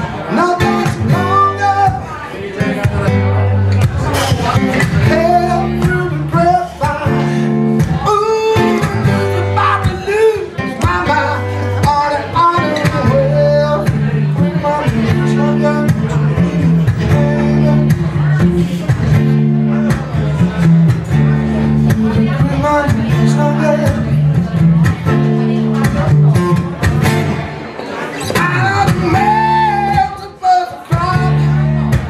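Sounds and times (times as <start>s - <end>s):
man singing blues: 0.0s - 32.0s
strummed acoustic guitar: 0.0s - 32.0s.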